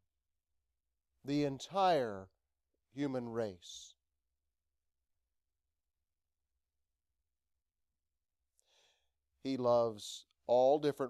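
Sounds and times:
faint intake of breath: 8.6s - 9.1s.

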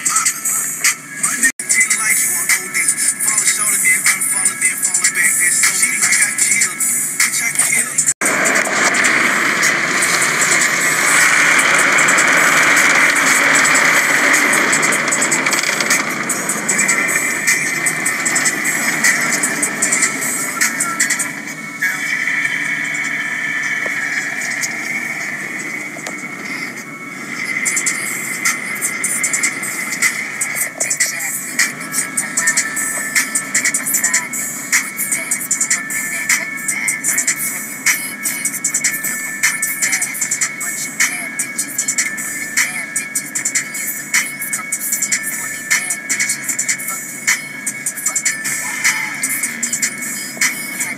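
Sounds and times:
music: 0.0s - 50.9s.

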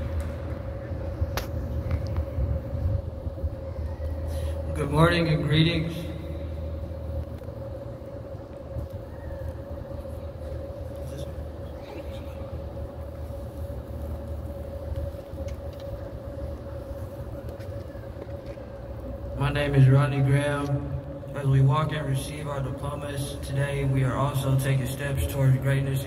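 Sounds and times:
wind on microphone: 0.0s - 4.3s
steady mid-pitched hum: 0.0s - 26.0s.

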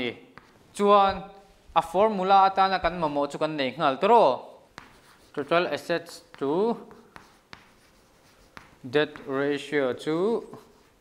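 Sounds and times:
chalk scratching on blackboard: 0.3s - 0.6s, 4.7s - 9.7s, 10.4s - 11.0s
chalk tapping: 0.3s - 1.4s, 4.6s - 9.8s, 10.4s - 11.0s.

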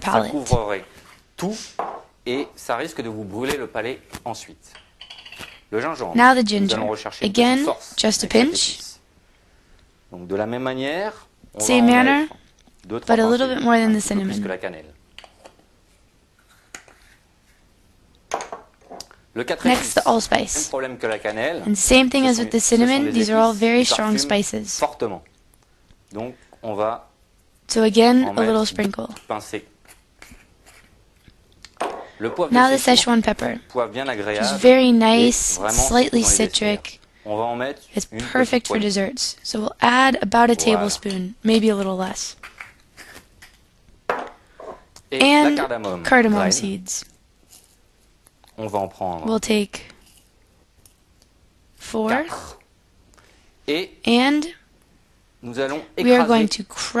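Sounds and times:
glass jars clicking: 4.8s - 5.7s.

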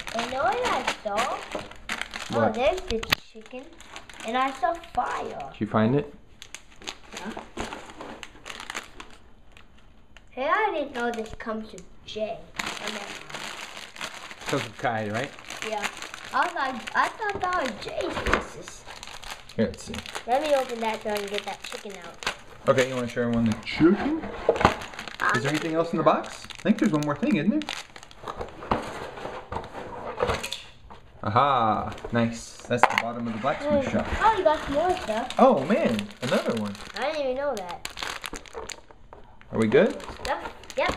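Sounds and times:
packaging rustling: 0.0s - 5.6s, 6.4s - 10.3s, 12.5s - 30.6s, 31.5s - 40.9s
plastic bag crinkling: 0.0s - 5.6s, 6.4s - 10.3s, 10.9s - 11.8s, 12.4s - 30.6s, 33.0s - 40.9s.

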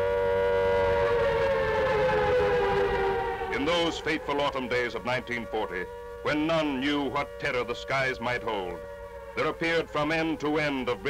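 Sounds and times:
air-raid siren wailing: 0.0s - 11.0s.

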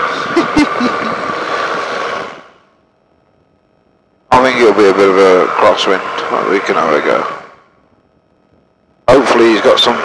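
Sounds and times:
cockpit noise rush and hum: 0.0s - 10.0s.

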